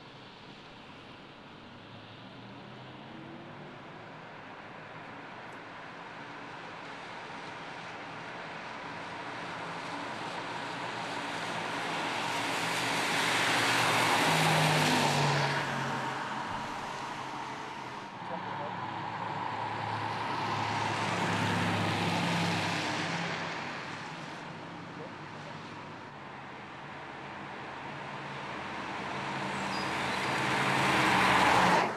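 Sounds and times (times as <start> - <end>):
tyres hissing on wet road: 5.9 - 26.1, 26.9 - 31.9.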